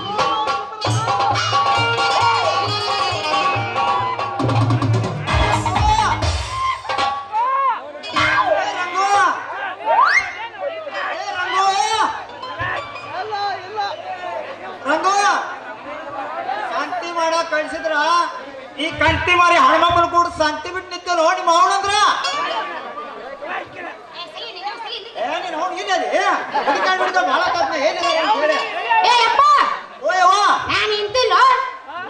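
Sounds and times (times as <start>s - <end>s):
actors talking over microphones: 0.0s - 32.0s.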